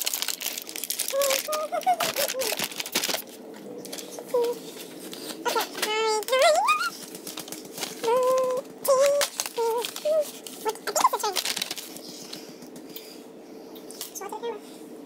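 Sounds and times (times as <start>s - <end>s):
cardboard clicking and crinkling: 0.0s - 12.4s
child squealing: 1.1s - 2.6s, 5.5s - 7.0s, 8.0s - 10.3s.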